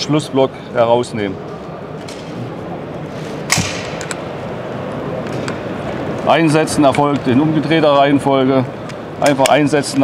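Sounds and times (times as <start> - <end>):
busy hall background noise: 0.0 - 10.0.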